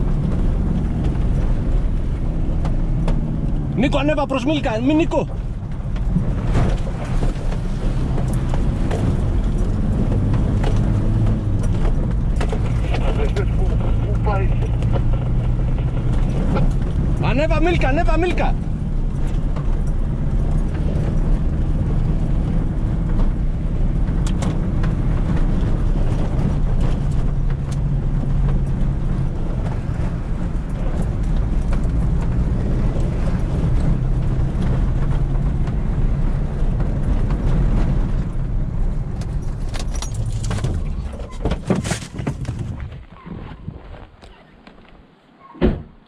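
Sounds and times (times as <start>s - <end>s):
truck engine droning: 0.0s - 41.5s.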